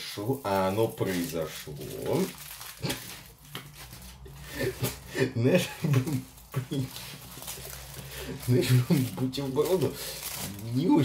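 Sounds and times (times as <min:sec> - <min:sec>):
aluminium foil crinkling: 0:00.0 - 0:11.0
man's voice murmuring: 0:04.5 - 0:07.2, 0:08.3 - 0:11.0.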